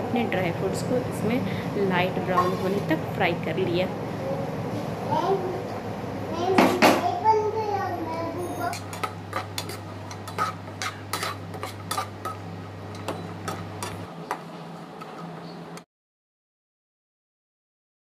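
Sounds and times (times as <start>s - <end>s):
person speaking: 1.8s - 3.9s
metal spoon scraping a frying pan: 2.4s - 2.9s, 8.5s - 14.1s.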